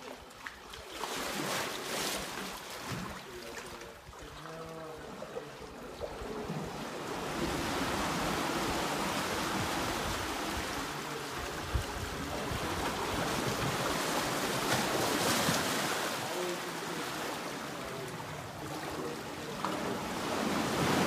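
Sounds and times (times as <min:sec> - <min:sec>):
water sloshing against rock walls: 0:00.0 - 0:21.0.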